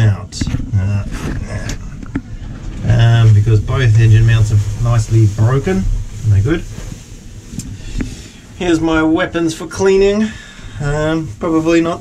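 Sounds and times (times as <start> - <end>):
cloth rustling against microphone: 0.4 - 12.0.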